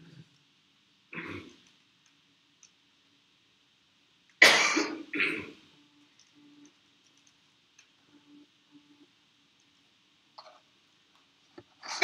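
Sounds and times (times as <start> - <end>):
person coughing: 4.4 - 5.6.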